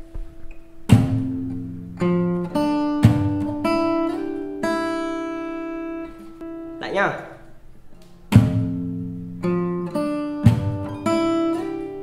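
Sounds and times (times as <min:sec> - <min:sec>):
fingerstyle acoustic guitar: 0:00.0 - 0:06.8, 0:07.4 - 0:12.0
palm slap on guitar: 0:00.1 - 0:01.6, 0:03.0 - 0:03.6, 0:07.9 - 0:08.9, 0:10.4 - 0:11.1.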